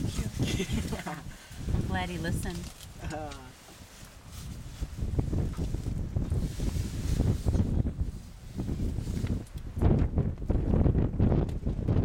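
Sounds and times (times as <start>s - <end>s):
wind buffeting microphone: 0.0s - 12.0s
bush rustling: 0.1s - 9.6s.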